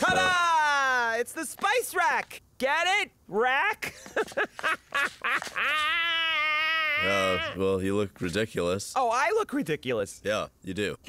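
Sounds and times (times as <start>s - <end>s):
woman laughing: 0.0s - 0.6s, 3.8s - 7.6s.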